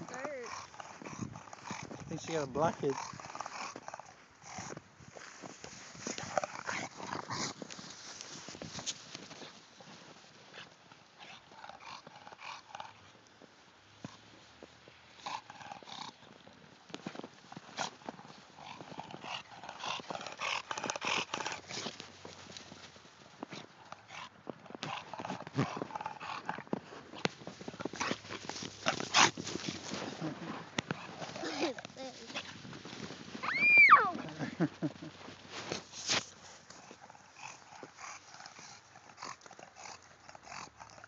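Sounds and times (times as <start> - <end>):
dog noises: 0.0 - 4.8, 17.6 - 22.6, 23.5 - 32.6, 33.4 - 41.0
crunches and scuffs in snow: 4.6 - 11.4, 21.1 - 38.8.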